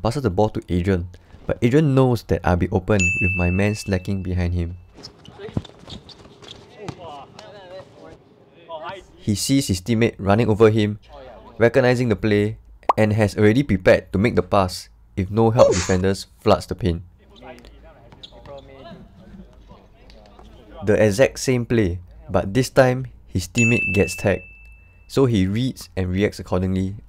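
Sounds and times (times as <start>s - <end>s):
players' voices calling out: 5.2s - 9.2s.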